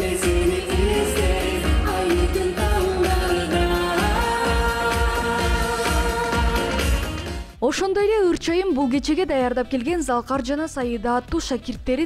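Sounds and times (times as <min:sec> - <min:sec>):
woman singing into a microphone: 0:00.0 - 0:07.2
amplified backing music with bass beat: 0:00.0 - 0:07.6.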